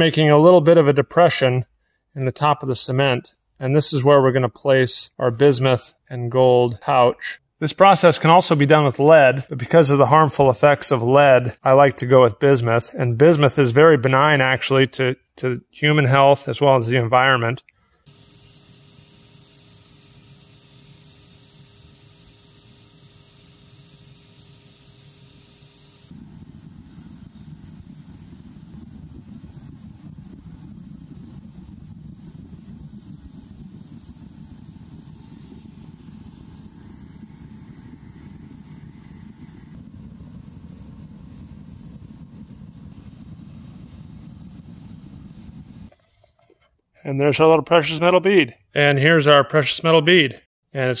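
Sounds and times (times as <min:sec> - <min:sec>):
furnace burner rumbling: 0:18.1 - 0:27.4
faint steady whine: 0:18.1 - 0:45.9
steady low hum: 0:18.1 - 0:45.9.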